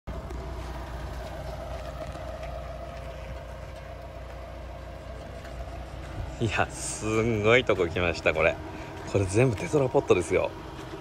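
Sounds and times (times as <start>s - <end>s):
vehicle engine idling: 0.1s - 11.0s.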